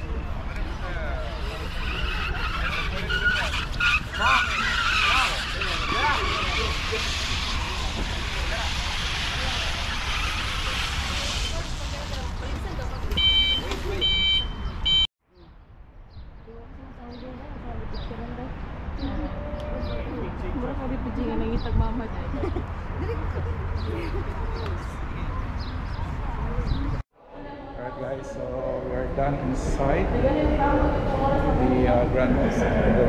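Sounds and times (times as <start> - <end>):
wind buffeting microphone: 16.0 - 27.0, 28.8 - 33.0.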